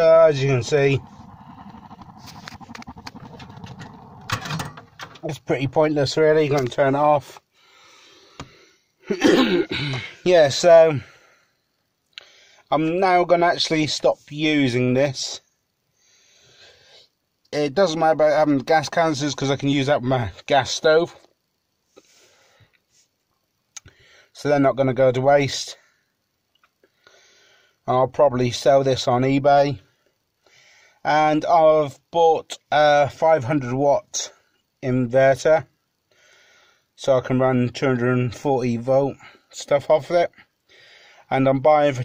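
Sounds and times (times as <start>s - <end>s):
gas heater spluttering and popping: 0.0s - 5.4s
steady burner rush: 0.0s - 6.4s
faint breath: 7.5s - 9.0s, 11.0s - 12.7s, 15.9s - 17.3s, 21.9s - 23.2s, 23.8s - 24.4s, 25.8s - 27.8s, 30.0s - 31.0s, 36.0s - 37.0s, 40.6s - 41.3s.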